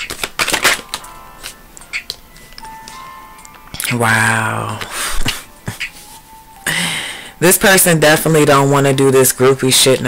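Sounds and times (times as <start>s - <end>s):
tarot cards being shuffled: 0.0s - 2.6s
quiet background music: 0.0s - 10.0s.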